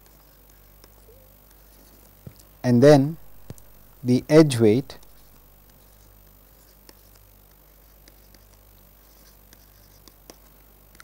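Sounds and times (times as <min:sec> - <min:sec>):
stylus scratching on tablet screen: 0:00.0 - 0:02.2, 0:05.0 - 0:11.0.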